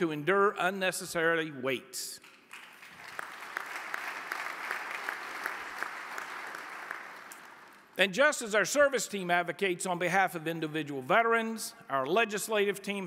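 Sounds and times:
audience applauding: 2.5 - 7.9.

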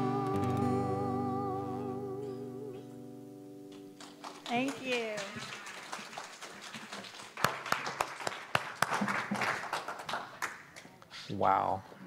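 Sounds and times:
people applauding: 3.7 - 10.9
voices: 4.5 - 5.4.

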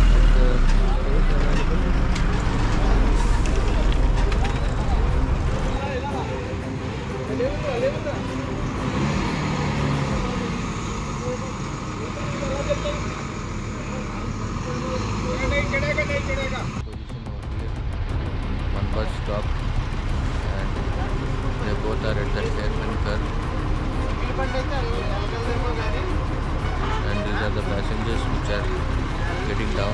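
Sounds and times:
heavy diesel engines running: 0.0 - 29.9.

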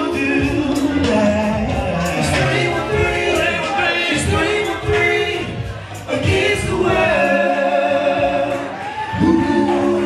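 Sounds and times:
music: 0.0 - 10.0
voices singing together: 0.0 - 10.0.

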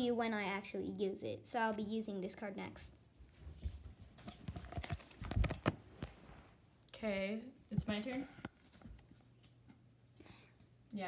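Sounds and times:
playing cards tapping and rustling: 3.6 - 6.2.

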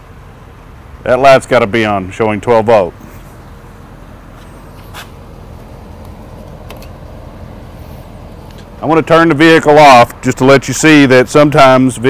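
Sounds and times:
pickup truck engine idling: 0.0 - 12.0.

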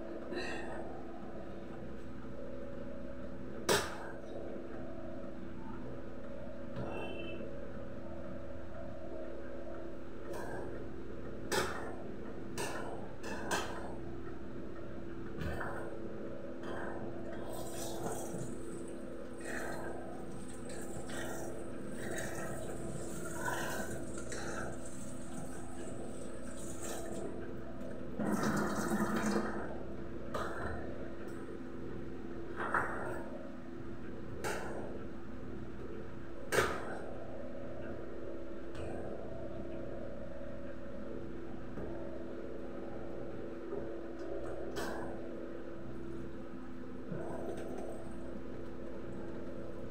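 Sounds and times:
steady low hum: 0.0 - 49.9
electric fan humming: 16.0 - 30.3
kitchen tap water running: 28.2 - 29.5.

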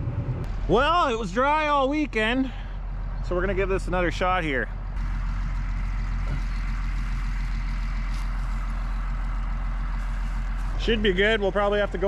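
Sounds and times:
tractor engine idling: 0.0 - 12.0.

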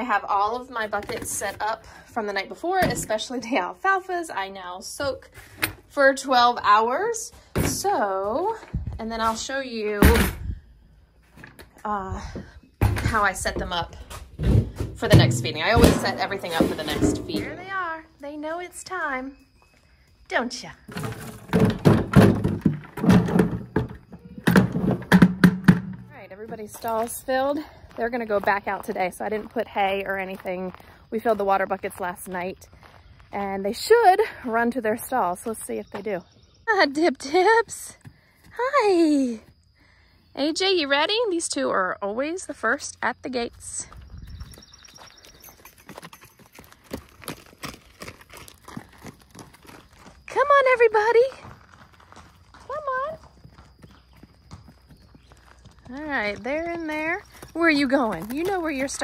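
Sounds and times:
knocks and thunks: 12.8 - 17.7, 20.9 - 26.2
horses' hooves clip-clopping: 43.9 - 59.0.

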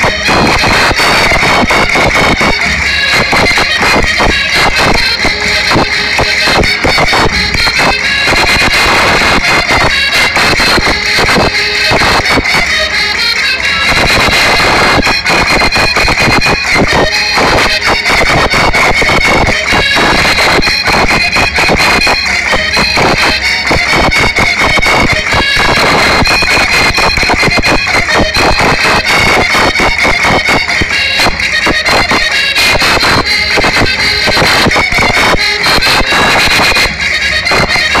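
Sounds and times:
folk dance music: 0.0 - 38.0
high reedy note: 0.0 - 38.0
quick busy percussion: 0.0 - 38.0.

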